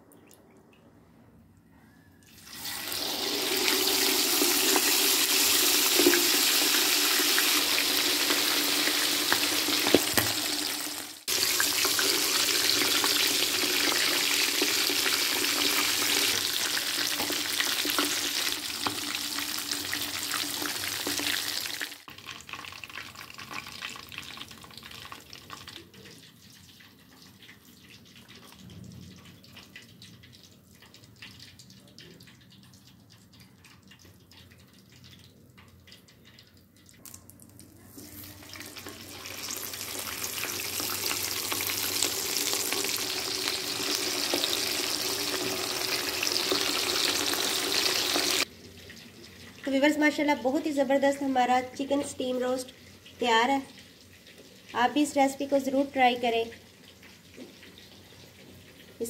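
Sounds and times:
chicken sizzling in hot oil: 2.4s - 37.0s, 38.0s - 59.0s.

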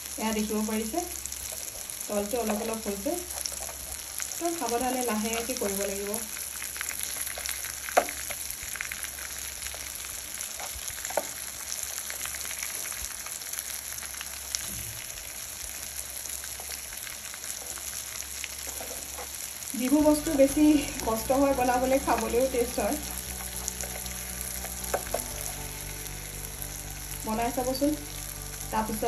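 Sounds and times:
food sizzling in oil: 0.0s - 29.0s.

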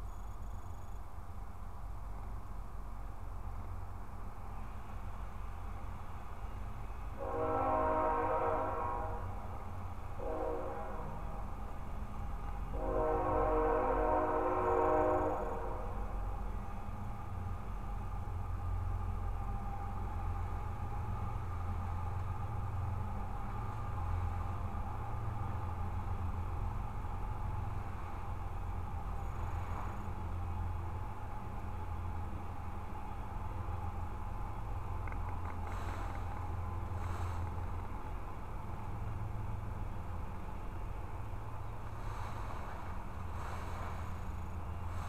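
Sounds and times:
horn blasts: 7.2s - 9.4s, 10.2s - 11.5s, 12.7s - 16.1s.

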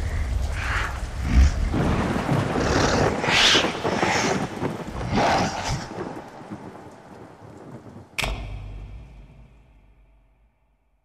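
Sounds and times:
rain hiss: 0.0s - 10.2s
thunder rumble: 0.0s - 10.8s
sharp thunder crack: 1.2s - 10.5s.

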